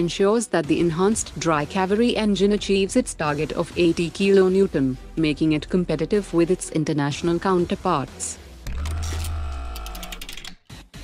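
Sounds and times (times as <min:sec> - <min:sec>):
fast high ticking: 0:08.7 - 0:10.6.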